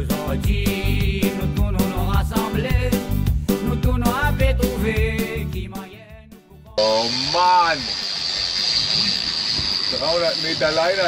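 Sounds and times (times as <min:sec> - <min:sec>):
music: 0:00.0 - 0:07.2
man's voice: 0:00.0 - 0:07.8
wind and water hiss: 0:06.8 - 0:11.0.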